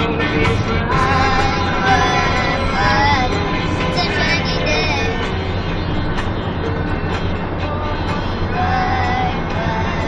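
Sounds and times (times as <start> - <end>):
van engine and tyres rumbling: 0.0 - 10.0
boy singing: 0.8 - 5.2, 7.6 - 10.0.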